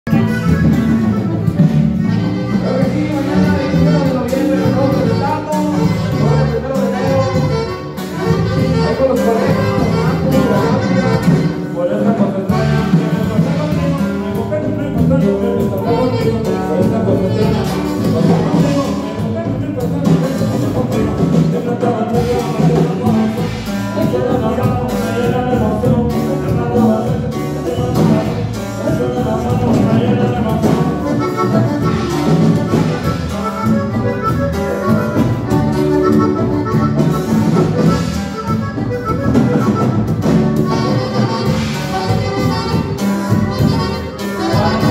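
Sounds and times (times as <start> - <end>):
live band playing latin dance music: 0.0 - 44.9.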